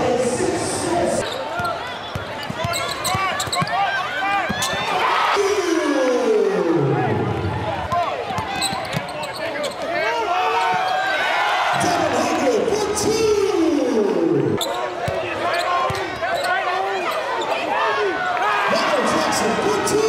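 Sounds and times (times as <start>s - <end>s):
crowd chattering: 0.0s - 20.0s
sneakers squeaking: 1.2s - 5.0s, 8.3s - 9.9s, 14.6s - 17.7s.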